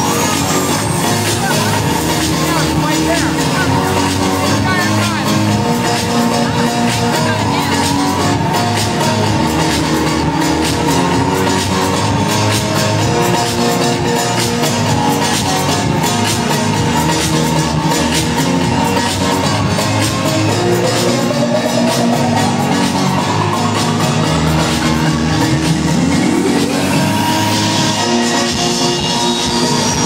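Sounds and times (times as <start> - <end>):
electronic dance music: 0.0 - 30.0.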